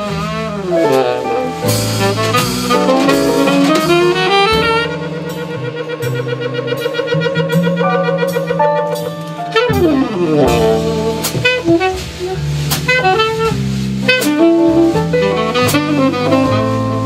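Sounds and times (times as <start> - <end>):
piano: 0.0 - 17.0
tenor saxophone: 0.0 - 17.0
walking double bass: 0.0 - 17.0.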